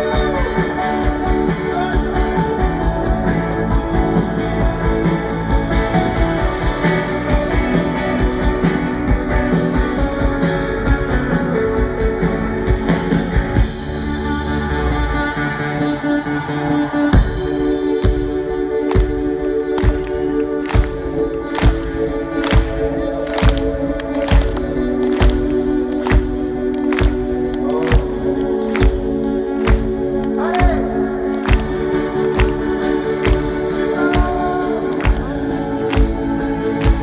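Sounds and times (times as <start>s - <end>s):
rock band playing live: 0.0s - 37.0s
steady drum beat: 17.2s - 37.0s.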